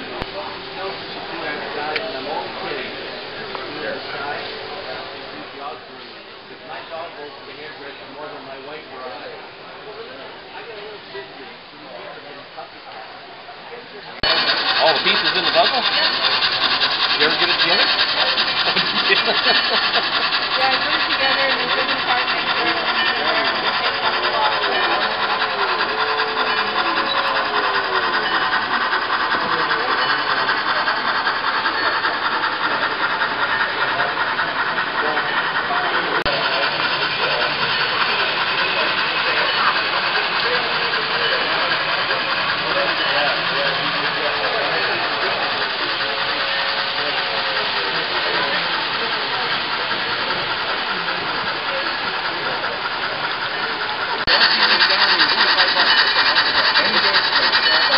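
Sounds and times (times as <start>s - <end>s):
model train wheels rattling on track: 14.2s - 57.9s
small motors whirring: 14.2s - 57.9s.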